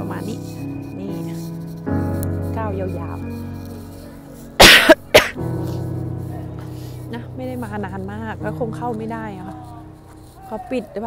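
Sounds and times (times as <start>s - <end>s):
background music with sustained tones: 0.0s - 11.0s
person coughing: 4.6s - 5.4s.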